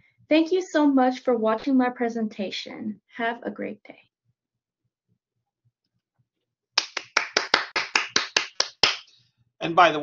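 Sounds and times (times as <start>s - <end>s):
person clapping: 6.8s - 9.1s.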